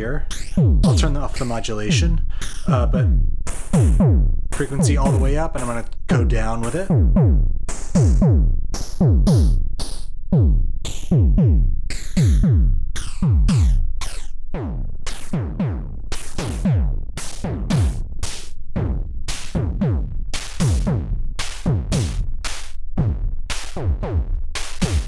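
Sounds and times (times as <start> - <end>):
electronic drums through phaser: 0.0 - 25.0.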